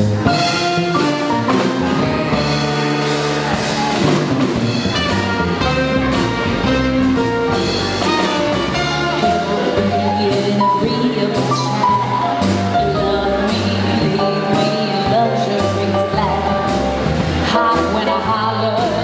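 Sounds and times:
drum kit: 0.0s - 19.0s
keyboard melody: 0.0s - 19.0s
walking bass line: 0.0s - 19.0s.

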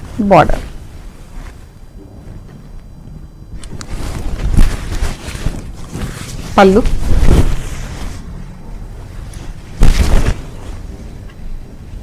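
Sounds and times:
fabric rustling: 0.0s - 2.8s, 3.5s - 12.0s
cloth rubbing thumps on microphone: 3.6s - 8.3s, 9.4s - 11.2s.

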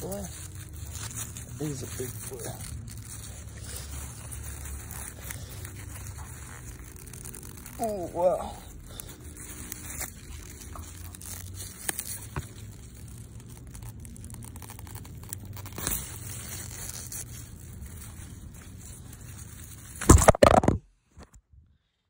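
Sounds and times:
leaves rustling and crinkling: 0.0s - 20.8s.

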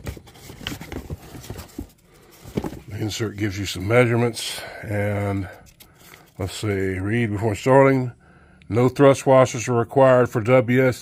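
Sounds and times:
paper rustling: 0.0s - 4.2s.

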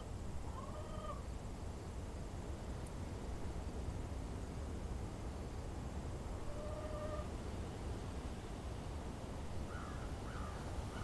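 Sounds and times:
bird calls: 9.7s - 11.0s.

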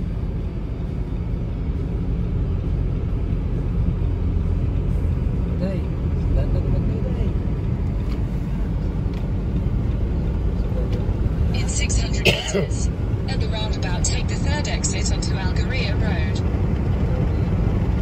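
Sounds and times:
car cabin road rumble: 0.0s - 18.0s.

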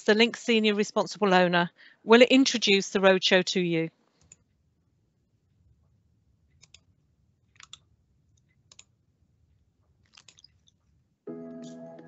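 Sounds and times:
computer mouse clicks: 6.6s - 6.9s, 7.5s - 7.9s, 8.7s - 8.9s, 10.1s - 10.5s.

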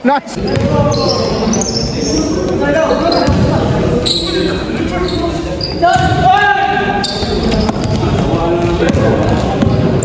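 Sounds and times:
basketball bouncing on court: 0.4s - 1.1s, 3.2s - 3.6s, 7.2s - 10.0s.

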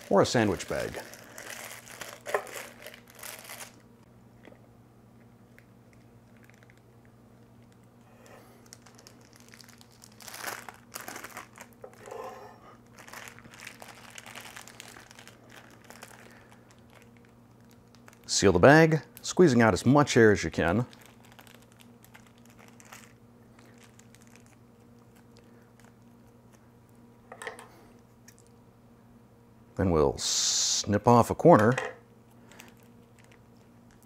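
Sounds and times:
plastic bag crinkling: 0.0s - 3.9s, 5.5s - 19.3s, 20.4s - 26.4s, 32.4s - 34.0s
faint low hum: 0.0s - 34.0s.

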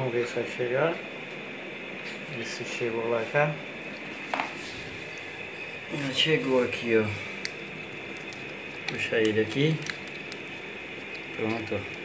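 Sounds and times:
steady background hiss: 0.0s - 12.0s
electrical wires clicking: 6.7s - 12.0s.

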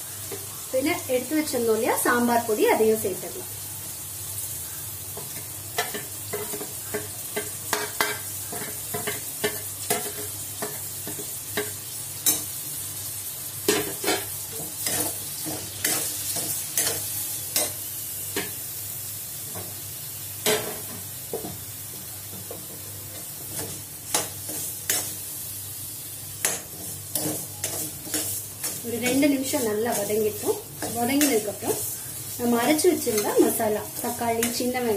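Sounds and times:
oil sizzling: 0.0s - 34.9s
metal spatula scraping pan: 26.4s - 34.7s.

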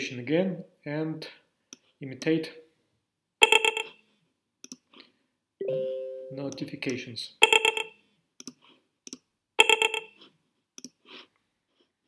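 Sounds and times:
electronic notification alert: 5.6s - 6.8s.

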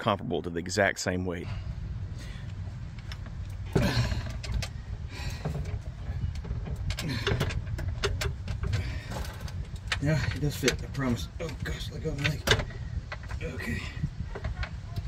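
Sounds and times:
low rumble: 1.4s - 15.0s
metal clunks and rattles: 2.9s - 15.0s.

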